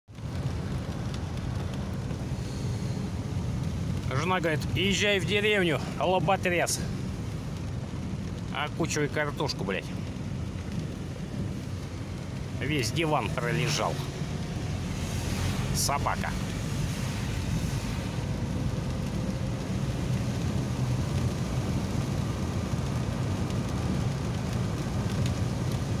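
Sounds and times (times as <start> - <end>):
low rumble: 0.1 - 26.0
tyres and rain hissing: 0.1 - 26.0.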